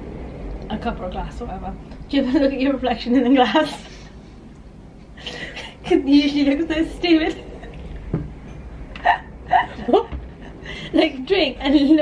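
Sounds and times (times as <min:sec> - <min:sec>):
woman laughing: 0:09.0 - 0:10.8.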